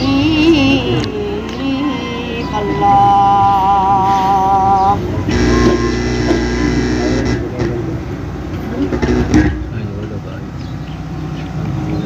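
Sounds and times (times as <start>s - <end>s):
boy singing through loudspeaker: 0.0s - 6.6s
steady tonal drone: 0.0s - 9.6s
crowd noise: 0.0s - 12.0s.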